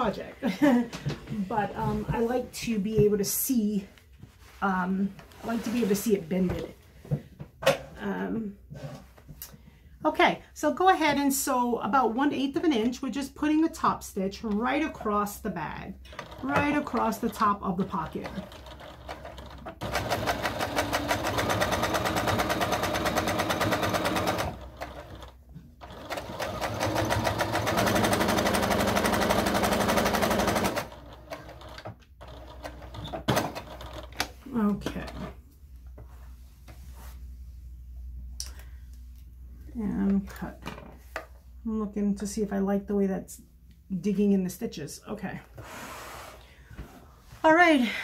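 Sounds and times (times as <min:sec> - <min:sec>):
sewing machine stitching: 0:16.1 - 0:34.3.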